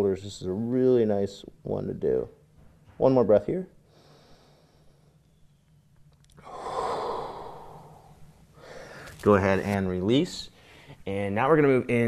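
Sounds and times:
man breathing out: 6.4 - 9.2.

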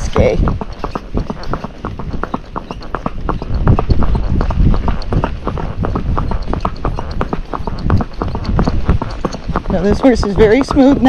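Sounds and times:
horse hoofbeats on pavement: 0.0 - 11.0.

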